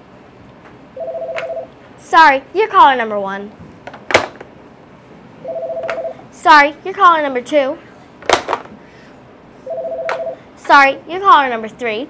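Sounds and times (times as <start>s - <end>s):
two-note telephone beep: 5.4s - 6.1s, 9.7s - 10.4s.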